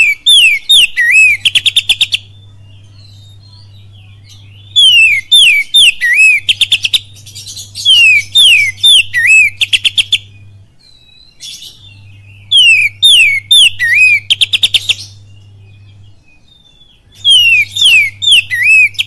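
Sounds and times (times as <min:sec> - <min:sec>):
bird singing whistles: 0:00.0 - 0:02.4, 0:04.4 - 0:19.0.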